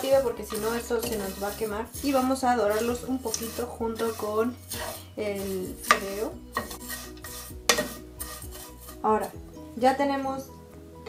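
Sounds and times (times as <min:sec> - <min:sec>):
metal ladle scraping a pan: 0:00.0 - 0:09.8
light sizzle: 0:00.0 - 0:10.4.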